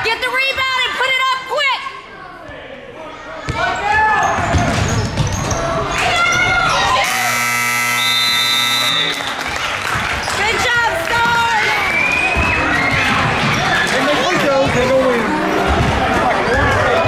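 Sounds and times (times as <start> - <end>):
scoreboard buzzer horn: 7.0 - 9.3.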